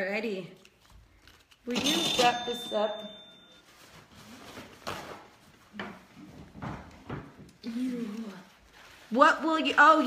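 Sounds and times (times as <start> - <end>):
paper rustling: 3.5 - 7.0, 7.7 - 10.0.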